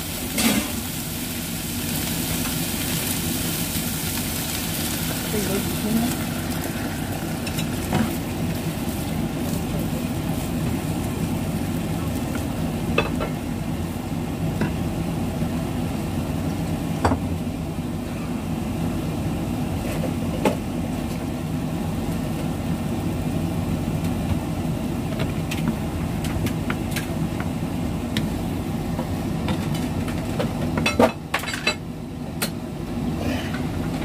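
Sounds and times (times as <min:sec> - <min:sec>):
broccoli stir-frying in a wok: 0:00.0 - 0:33.9
steady low hum: 0:00.0 - 0:34.0.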